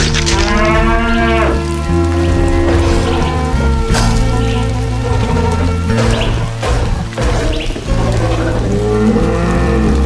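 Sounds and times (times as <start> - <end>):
bison bellowing: 0.0 - 10.0.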